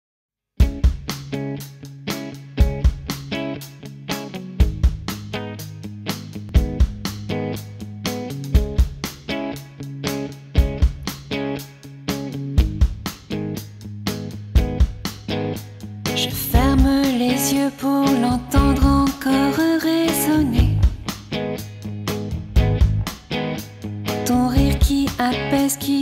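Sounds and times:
picked guitar notes: 0.6s - 26.0s
low bass notes: 16.0s - 17.0s, 18.2s - 19.1s, 20.3s - 25.0s
deep drum hits: 22.4s - 23.1s.

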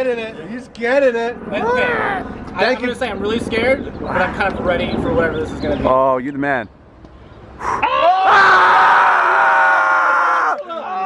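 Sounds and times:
voices talking: 0.0s - 7.9s
loud scream: 7.6s - 11.0s.

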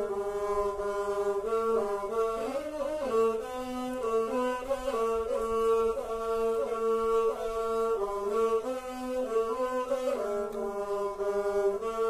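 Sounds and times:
bowed fiddles playing: 0.0s - 12.0s.

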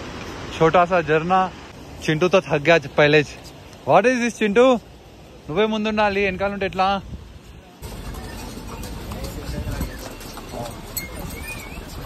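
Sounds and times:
people's voices: 7.5s - 12.0s
hooves clip-clopping: 7.8s - 12.0s.

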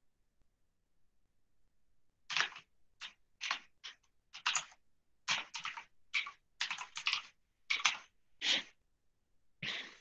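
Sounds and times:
computer keyboard keystrokes: 2.3s - 8.0s.

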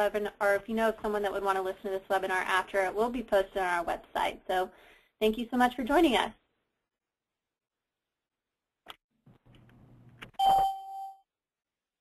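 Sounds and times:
electronic chime ding: 10.4s - 11.2s.

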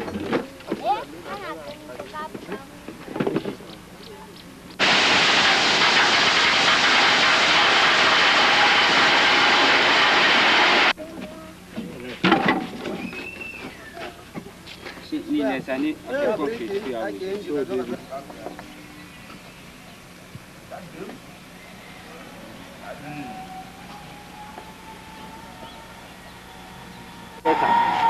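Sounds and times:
gravel pouring from dump truck: 4.8s - 11.0s.

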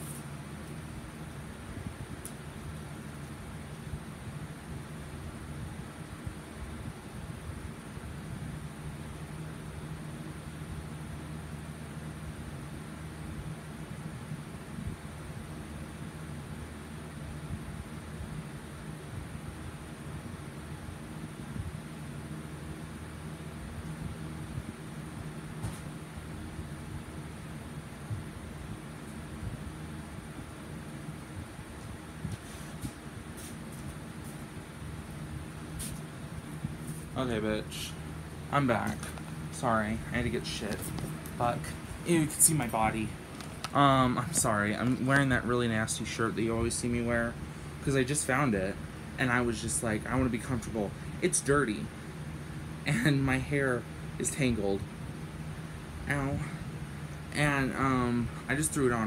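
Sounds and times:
low hum with hiss: 0.0s - 59.0s.

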